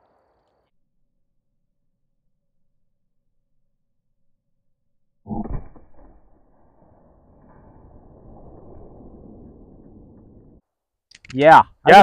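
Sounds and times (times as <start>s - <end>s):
low rumble: 5.3s - 10.6s.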